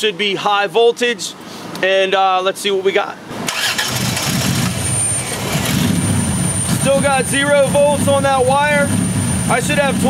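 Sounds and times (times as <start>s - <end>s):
car engine running unevenly: 3.8s - 10.0s.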